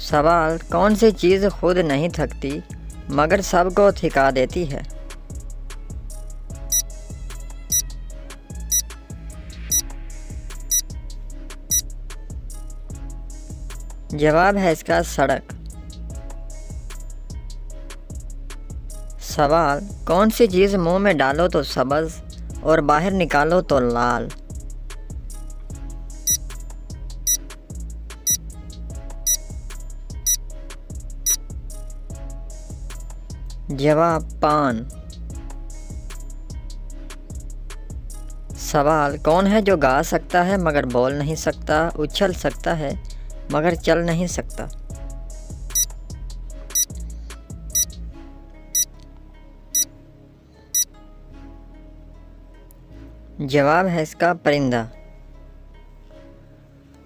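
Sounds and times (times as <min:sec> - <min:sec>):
background music: 0:00.0 - 0:57.0.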